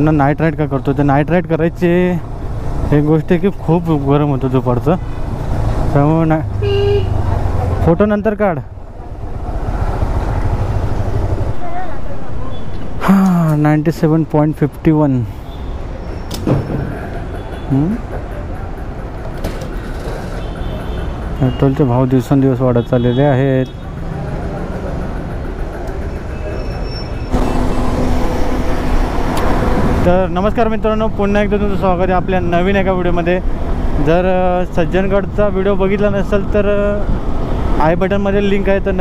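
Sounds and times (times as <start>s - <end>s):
motorcycle engine: 8.7s - 13.2s, 23.7s - 34.5s.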